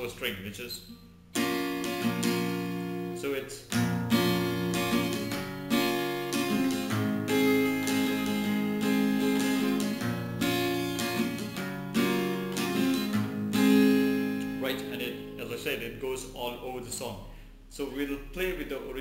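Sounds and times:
acoustic guitar strumming: 0.8s - 17.1s.

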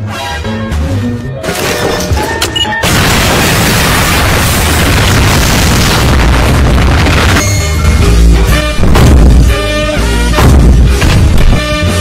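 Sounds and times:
music: 0.0s - 2.9s, 6.2s - 12.0s
cartoon explosion boom and rumble: 2.8s - 7.4s, 8.8s - 9.5s, 10.4s - 11.4s.

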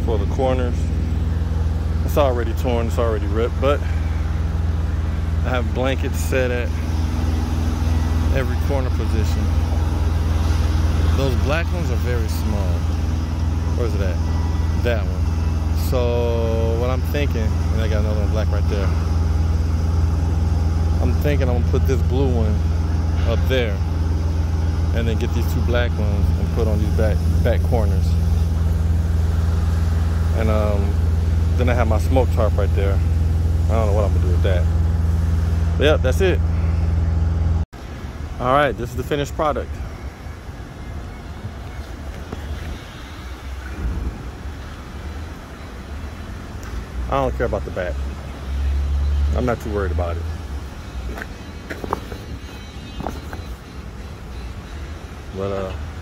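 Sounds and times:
diesel truck engine idling: 0.0s - 56.0s
low rumble of vehicle noise: 0.0s - 56.0s.

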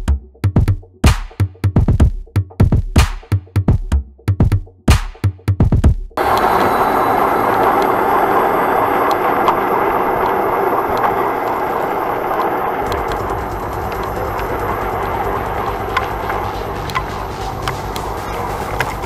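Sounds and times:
deep rumble: 6.2s - 19.0s
faint clicks: 6.2s - 19.0s
tyre-on-road noise: 6.2s - 19.0s
wind rushing: 6.2s - 19.0s.

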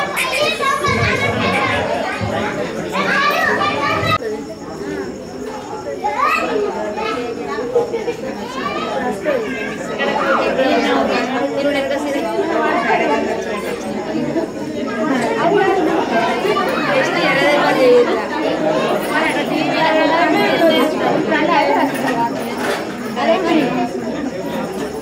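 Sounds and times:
hubbub of overlapping voices: 0.0s - 25.0s.

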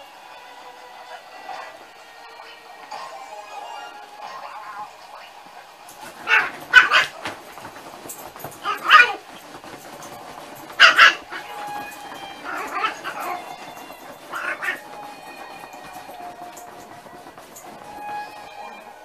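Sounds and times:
dogs yipping barks: 5.9s - 18.4s.

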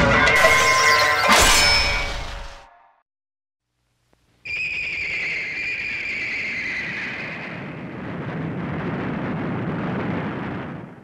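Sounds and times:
shrill descending whistle tone: 4.5s - 7.4s.

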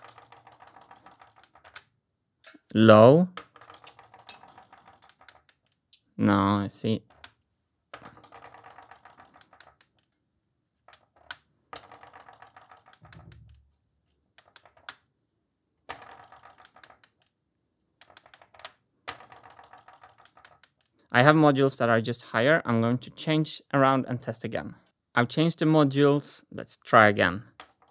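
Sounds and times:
steel marbles rolling on wooden track: 0.0s - 1.9s, 3.2s - 5.8s, 6.8s - 10.2s, 10.9s - 13.6s, 14.4s - 15.0s, 15.9s - 17.3s, 18.0s - 20.9s, 27.4s - 27.9s.

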